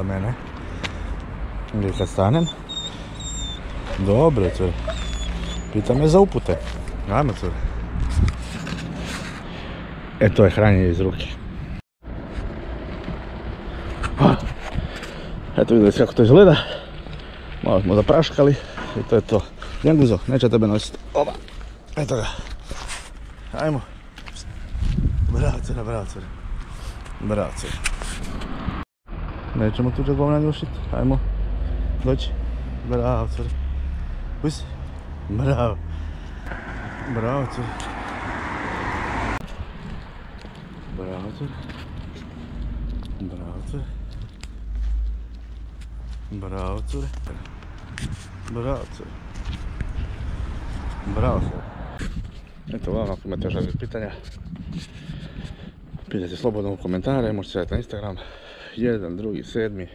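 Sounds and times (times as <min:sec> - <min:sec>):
wind buffeting microphone: 0:03.6 - 0:08.8, 0:24.0 - 0:29.4, 0:36.1 - 0:44.5, 0:47.3 - 0:58.0
car passing close by: 0:30.4 - 0:40.4, 0:47.6 - 0:52.0.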